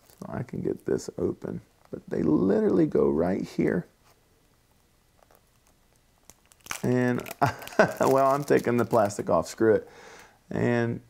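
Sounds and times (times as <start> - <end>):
cellophane crinkling: 0.0 - 0.8, 5.2 - 9.6.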